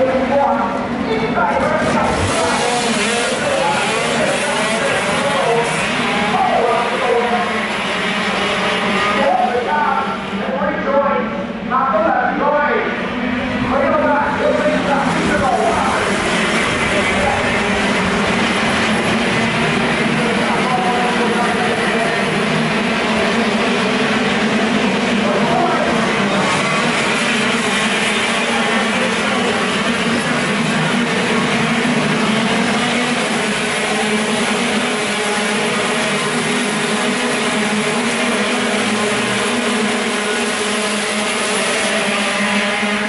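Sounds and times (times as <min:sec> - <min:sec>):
voices talking: 0:00.0 - 0:08.3, 0:09.0 - 0:23.5
kart engines running: 0:00.0 - 0:43.0.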